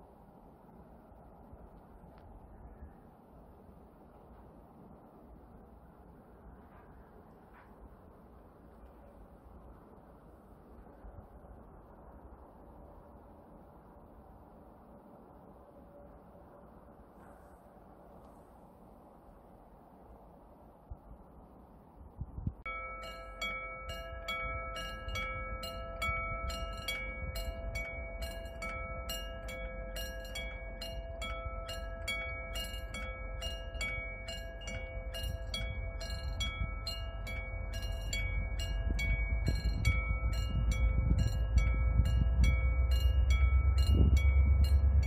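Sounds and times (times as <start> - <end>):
train rumble: 0.0 - 45.0
level crossing bell ringing: 22.7 - 45.0.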